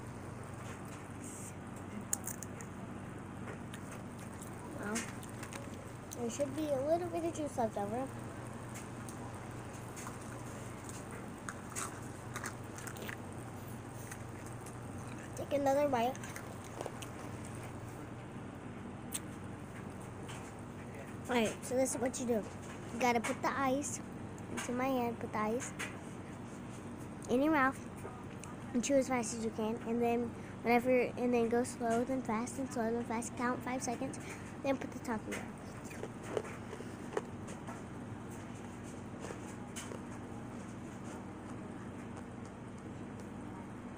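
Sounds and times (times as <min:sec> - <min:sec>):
steady low hum: 0:00.0 - 0:43.9
ice being chewed: 0:01.8 - 0:02.7, 0:03.5 - 0:18.0, 0:35.3 - 0:43.3.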